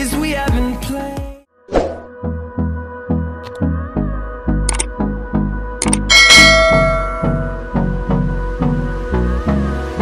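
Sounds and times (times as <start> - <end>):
pop song with steady beat: 0.0 - 1.5, 2.2 - 6.6, 7.3 - 10.0
bright bell chime: 6.1 - 7.7.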